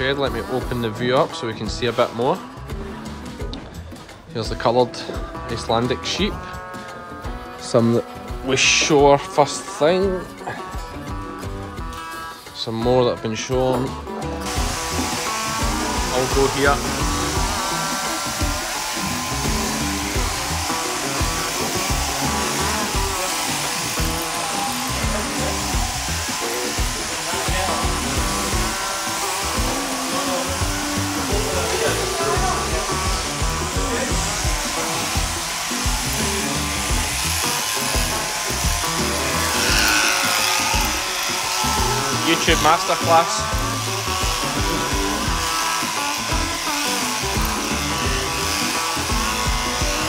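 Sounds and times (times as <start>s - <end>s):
background music: 0.0s - 50.0s
electric shearing handpieces whirring: 0.0s - 50.0s.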